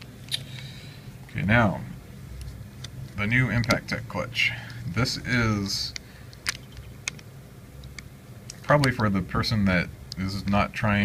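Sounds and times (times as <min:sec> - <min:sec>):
low room hum: 0:00.0 - 0:11.0.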